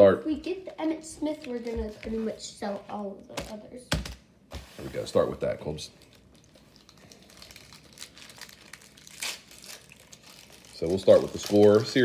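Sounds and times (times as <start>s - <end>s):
card pack wrappers crinkling: 5.9s - 12.0s.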